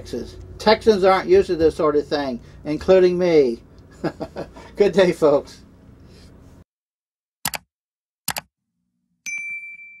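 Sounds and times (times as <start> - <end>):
bright bell chime: 9.2 - 10.0.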